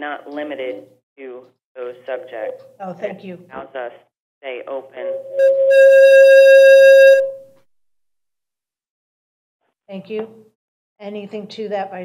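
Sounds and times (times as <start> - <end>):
audio feedback howl: 5.0 - 7.5.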